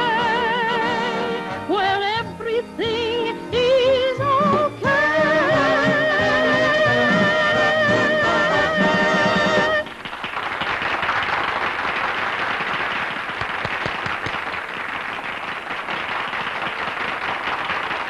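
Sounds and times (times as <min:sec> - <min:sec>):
crowd applauding: 0:09.6 - 0:18.0.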